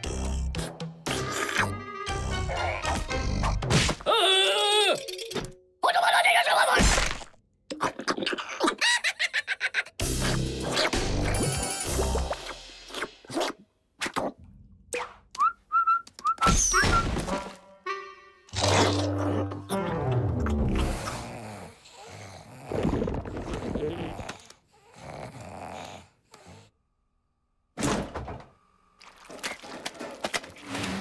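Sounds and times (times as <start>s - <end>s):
cartoon background music: 0.0s - 4.0s, 10.0s - 13.4s, 16.5s - 21.3s.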